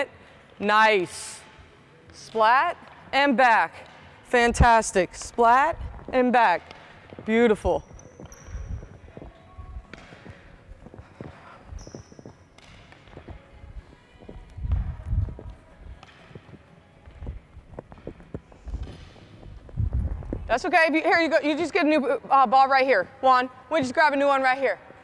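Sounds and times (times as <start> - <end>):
balls and rackets tapping floor: 5.1 - 19.8
high squeaks: 7.7 - 9.1.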